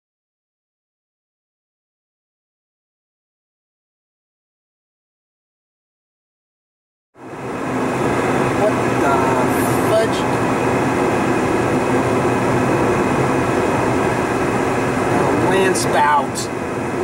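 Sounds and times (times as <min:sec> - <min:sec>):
car road and engine noise: 0:07.2 - 0:17.0.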